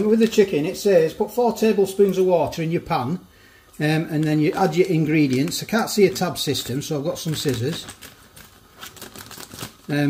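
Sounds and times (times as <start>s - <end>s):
scissors snipping plastic bag: 4.0s - 10.0s.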